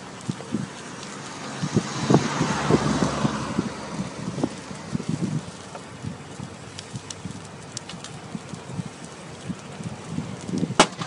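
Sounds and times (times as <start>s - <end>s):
car passing on road: 0.0s - 7.7s.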